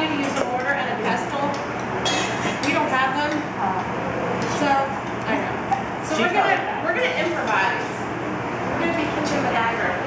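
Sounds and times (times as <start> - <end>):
people talking: 0.0 - 1.6, 2.6 - 8.0, 8.8 - 10.0.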